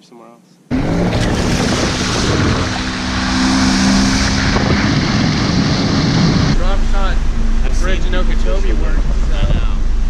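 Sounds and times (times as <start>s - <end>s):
outboard motor running: 0.7s - 7.0s
wind on microphone: 1.0s - 6.6s, 8.9s - 10.0s.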